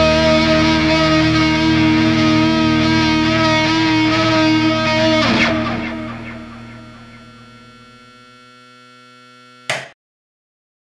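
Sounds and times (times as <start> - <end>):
distorted guitars and bass chord: 0.0 - 9.9.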